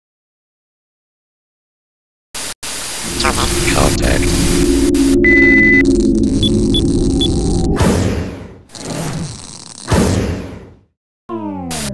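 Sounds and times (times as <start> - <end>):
high electronic beep: 3.0 - 7.8
low buzzing hum: 3.0 - 7.8
whooshes: 3.0 - 8.6.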